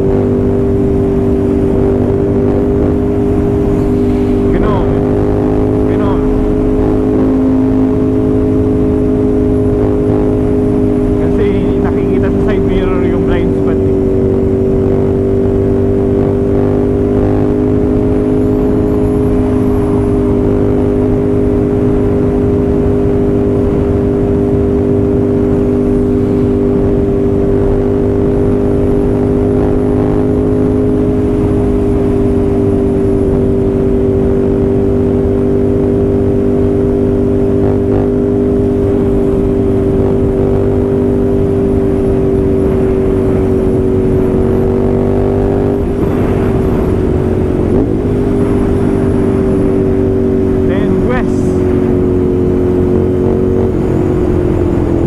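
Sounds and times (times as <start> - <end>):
wind rush: 0.0 - 17.0, 31.0 - 55.0
motorcycle engine cruising: 0.0 - 55.0.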